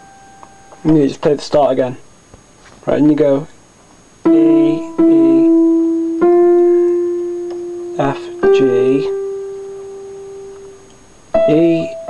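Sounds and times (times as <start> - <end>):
electronic piano held notes: 0.0 - 1.2, 4.2 - 12.0.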